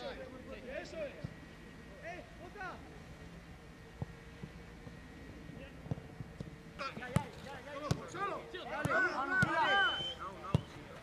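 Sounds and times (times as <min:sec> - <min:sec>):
players shouting: 0:06.8 - 0:11.0.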